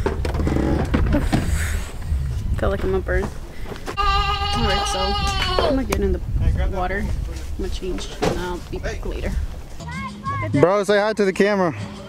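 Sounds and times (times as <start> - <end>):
wind rumbling on microphone: 0.0 - 9.8.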